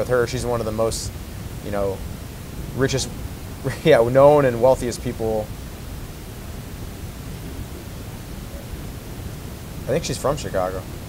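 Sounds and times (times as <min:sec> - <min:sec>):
man speaking: 0:00.0 - 0:02.0, 0:02.7 - 0:05.5, 0:09.8 - 0:10.9
faint hiss: 0:00.0 - 0:11.0
low room hum: 0:00.0 - 0:11.0.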